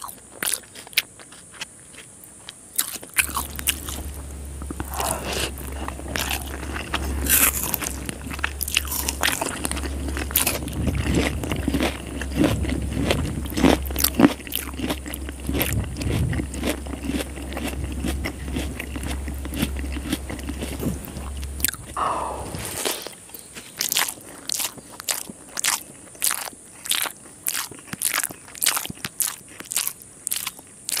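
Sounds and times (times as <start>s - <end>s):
chewing and crunching rice: 0.0s - 31.0s
steady low hum: 2.7s - 24.4s.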